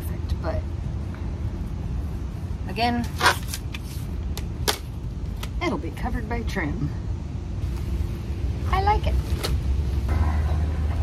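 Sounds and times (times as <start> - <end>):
low steady rumble: 0.0 - 11.0.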